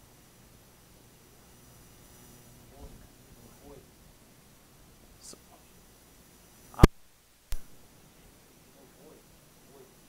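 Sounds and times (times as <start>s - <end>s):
faint distant murmured voice: 2.5s - 4.1s, 8.4s - 10.0s.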